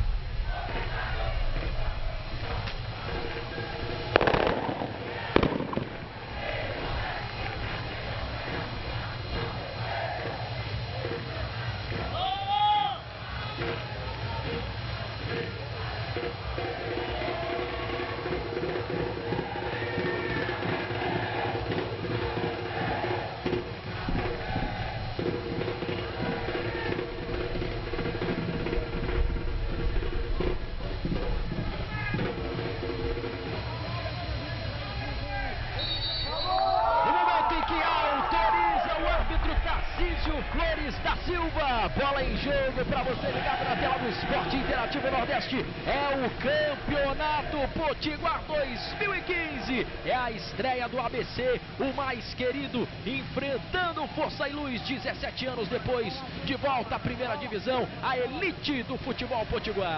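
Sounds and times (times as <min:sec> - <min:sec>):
distant voices: 0:00.0 - 0:59.9
stadium low hum: 0:00.0 - 0:59.9
sharp bangs: 0:04.0 - 0:09.6.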